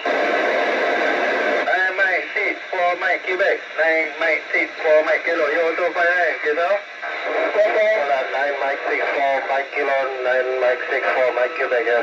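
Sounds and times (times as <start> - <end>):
background radio hiss: 0.0 - 12.0
radio operators' voices: 0.0 - 12.0.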